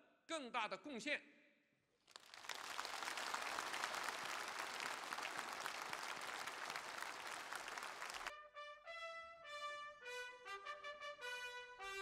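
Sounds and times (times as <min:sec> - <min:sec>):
large audience applauding: 0:02.1 - 0:08.3.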